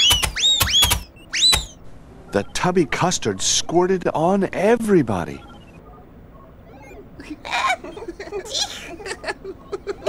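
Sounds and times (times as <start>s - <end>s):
whistling swoop: 0.0s - 1.8s.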